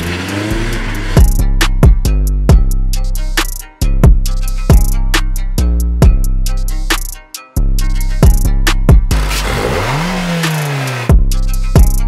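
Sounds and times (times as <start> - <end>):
car engine revving: 0.0 - 1.6, 9.0 - 11.2.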